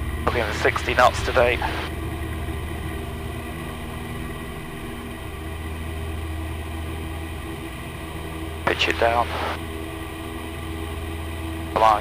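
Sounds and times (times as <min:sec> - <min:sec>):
propeller engine drone: 0:00.0 - 0:12.0.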